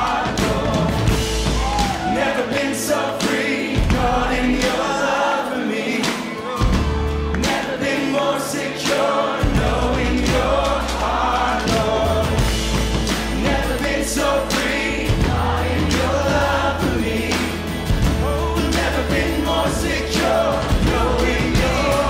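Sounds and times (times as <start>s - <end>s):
band playing: 0.0s - 22.0s
group singing worship song: 0.0s - 22.0s.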